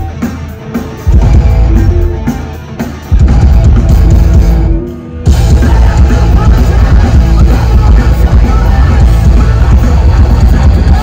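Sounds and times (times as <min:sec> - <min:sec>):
bass guitar: 0:00.0 - 0:11.0
distorted electric guitars: 0:00.0 - 0:11.0
drum kit: 0:00.0 - 0:11.0.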